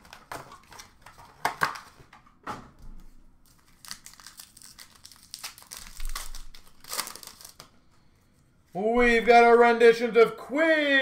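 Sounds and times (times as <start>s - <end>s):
wrapper crinkling and tearing: 3.5s - 7.7s.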